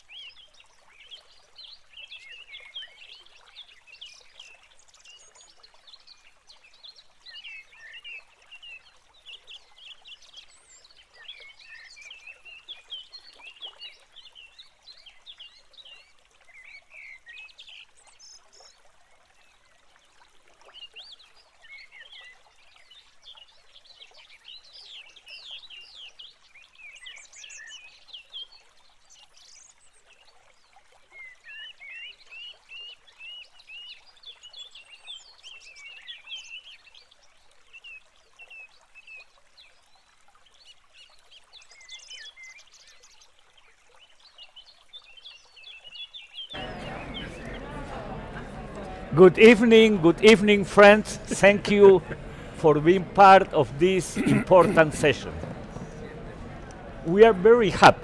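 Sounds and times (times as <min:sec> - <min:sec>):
birds chirping: 0:46.6 - 0:58.0.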